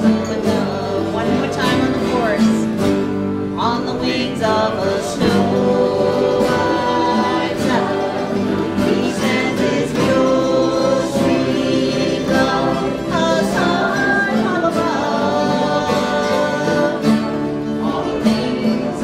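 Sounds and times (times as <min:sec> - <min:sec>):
acoustic guitar strumming: 0:00.0 - 0:19.0
voices singing gospel song: 0:00.0 - 0:19.0.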